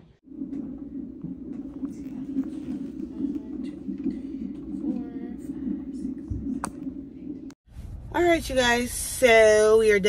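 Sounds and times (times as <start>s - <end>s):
doppler heartbeat pulsing whoosh: 0.2s - 8.1s.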